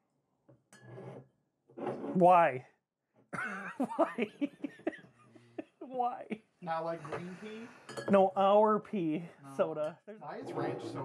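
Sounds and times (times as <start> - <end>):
glass bottles clinking: 7.8 - 8.2.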